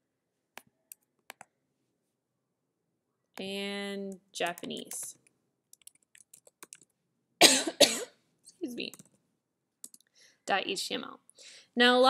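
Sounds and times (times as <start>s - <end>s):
soft keyboard clicks: 4.4s - 7.0s, 8.8s - 9.2s, 9.8s - 10.1s
person coughing: 7.4s - 8.2s.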